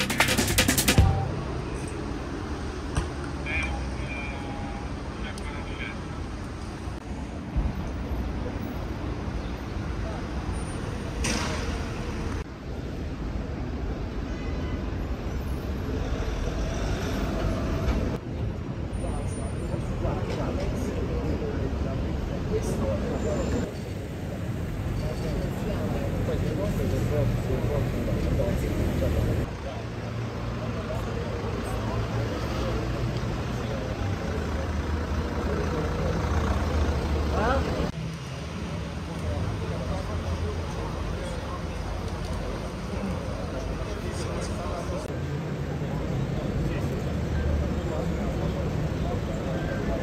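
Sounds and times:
street traffic: 0.0s - 50.0s.

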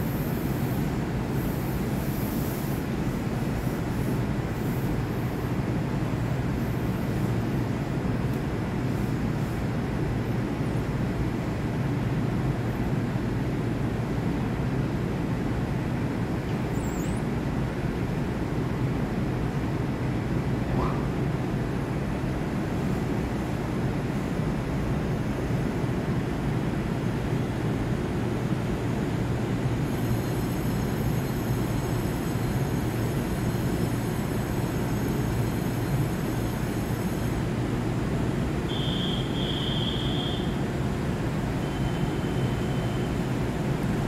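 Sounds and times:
electric train hum: 0.0s - 44.0s
faint high whine: 29.8s - 44.0s.

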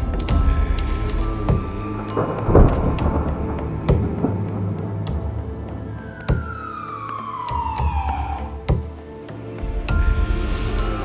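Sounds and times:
deep rumbling boom: 0.0s - 6.7s
music: 0.0s - 11.0s.

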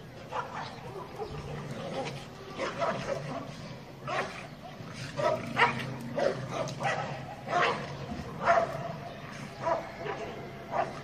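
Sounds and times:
dogs wrestling: 0.2s - 11.0s.

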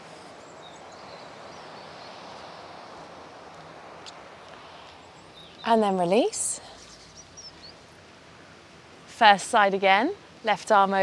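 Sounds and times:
distant surf: 0.0s - 11.0s.

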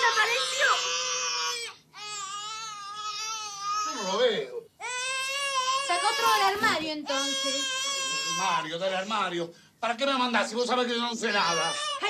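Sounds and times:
baby crying: 0.0s - 8.7s, 11.2s - 12.0s.

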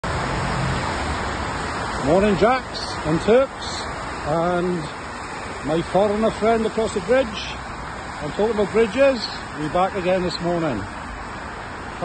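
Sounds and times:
traffic on a wet road: 0.0s - 12.0s.

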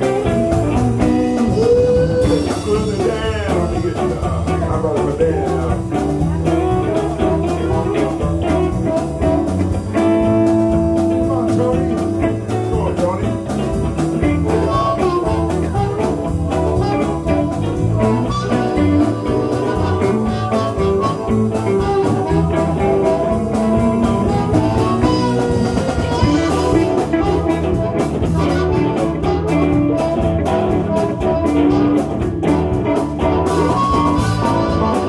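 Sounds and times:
bass: 0.0s - 35.0s
drum kit: 0.0s - 35.0s
electric guitars: 0.0s - 35.0s
keyboard: 0.0s - 35.0s
harmonica: 14.4s - 35.0s.

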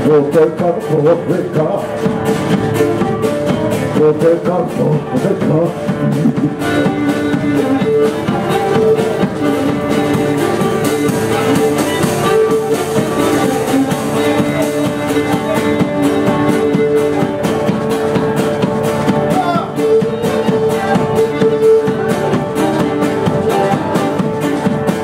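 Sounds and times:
acoustic guitar accompaniment: 0.0s - 25.0s.

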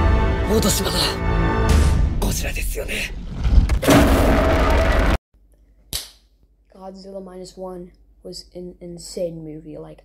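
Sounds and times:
movie soundtrack music and voices: 0.0s - 3.3s.

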